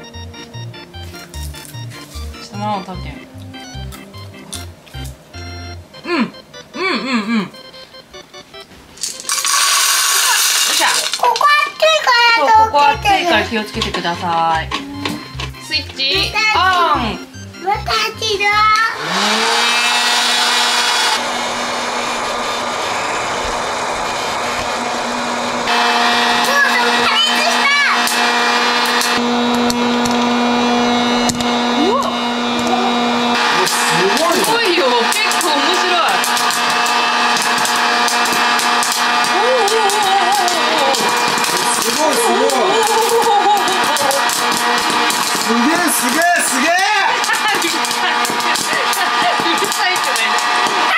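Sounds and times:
popcorn popper fan whine: 0:00.0 - 0:06.9, 0:07.7 - 0:50.9
popcorn kernels popping: 0:03.4 - 0:05.2, 0:09.0 - 0:12.3, 0:12.9 - 0:16.0, 0:25.7 - 0:30.3, 0:33.4 - 0:50.9.

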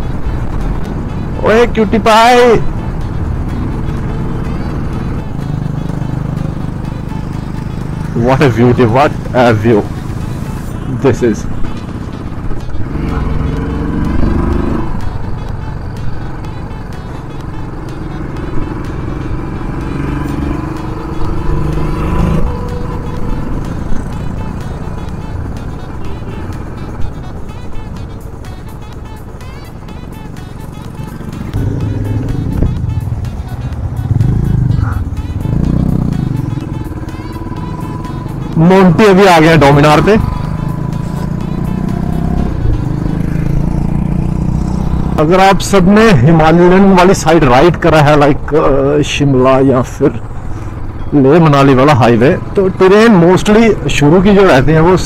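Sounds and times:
background music: 0:00.0 - 0:55.0
motorcycle engine rumble: 0:00.0 - 0:55.0
road and wind noise: 0:00.0 - 0:55.0.

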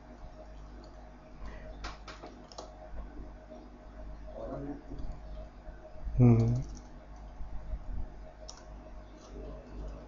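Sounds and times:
computer keyboard keystrokes: 0:01.8 - 0:02.7, 0:06.4 - 0:07.3, 0:08.4 - 0:10.0
man humming briefly: 0:06.2 - 0:06.7.

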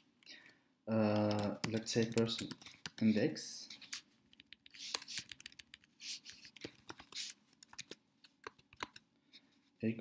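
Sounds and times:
computer keyboard typing: 0:01.0 - 0:03.2, 0:04.3 - 0:09.0.

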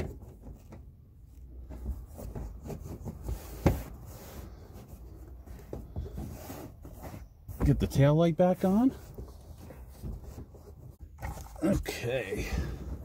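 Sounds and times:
soft rubbing and handling noises: 0:00.0 - 0:13.0.

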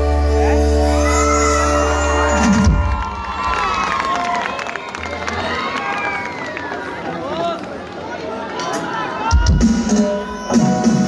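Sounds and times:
band music: 0:00.0 - 0:05.6, 0:08.6 - 0:11.0
crowd cheering and shouting: 0:00.0 - 0:11.0
high calls from crowd: 0:00.3 - 0:11.0.

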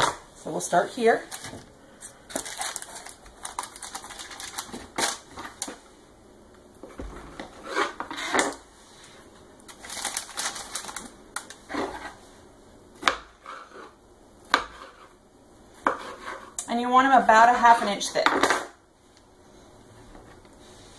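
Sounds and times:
parchment paper rustling: 0:01.2 - 0:05.8, 0:09.7 - 0:12.1.

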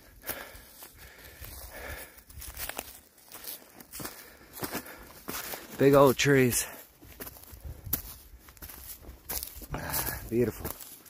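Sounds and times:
footsteps on dry leaves: 0:00.1 - 0:11.0.

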